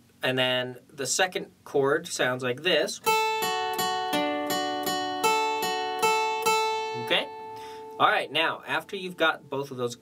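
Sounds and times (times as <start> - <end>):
acoustic guitar picking: 3.0 - 9.9.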